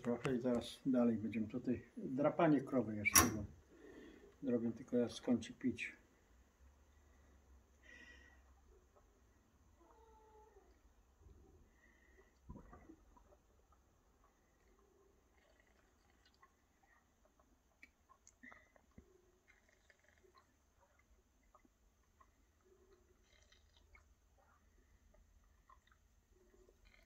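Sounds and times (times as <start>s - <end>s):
cow slurping water: 12.0s - 27.0s.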